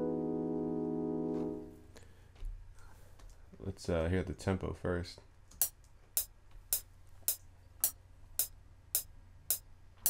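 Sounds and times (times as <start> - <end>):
metronome clicking: 5.6 - 9.6.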